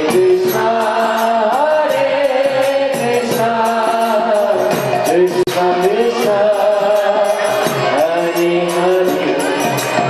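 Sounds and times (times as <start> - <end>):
devotional singing: 0.0 - 10.0.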